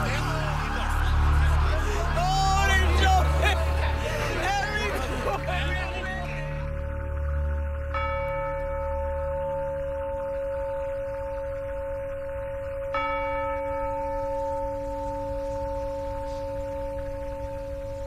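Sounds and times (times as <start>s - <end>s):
low rumble: 0.0s - 12.9s
deep bell tones: 0.0s - 18.0s.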